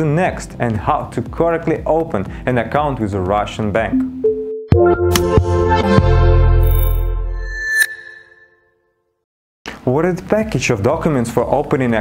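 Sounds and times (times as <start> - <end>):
bright ping: 6.7 - 8.7.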